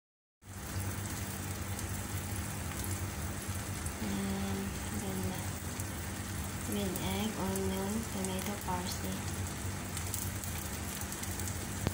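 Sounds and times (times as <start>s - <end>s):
food sizzling in a pan: 0.4s - 11.9s
low steady hum: 0.4s - 11.9s.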